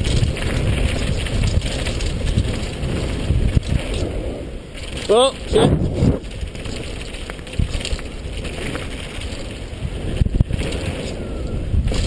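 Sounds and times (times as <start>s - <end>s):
bike rattling over rough ground: 0.0s - 12.0s
wind on microphone: 0.0s - 12.0s.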